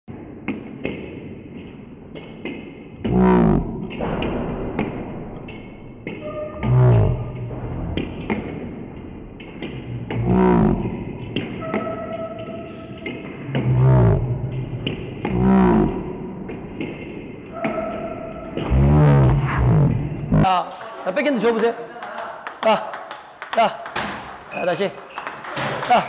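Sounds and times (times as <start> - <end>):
person calling out: 3.0 - 3.7.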